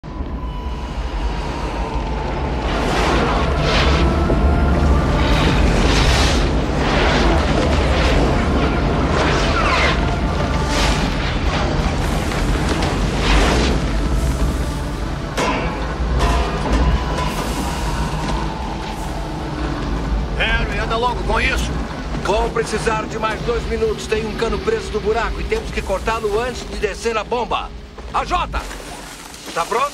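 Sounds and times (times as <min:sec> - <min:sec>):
deep rumble: 0:00.0 - 0:29.3
background music: 0:00.0 - 0:29.9
whooshing booming surges: 0:00.1 - 0:28.5.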